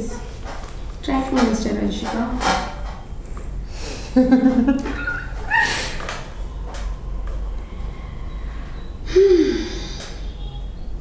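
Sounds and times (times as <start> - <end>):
person breathy sigh: 9.1 - 10.2.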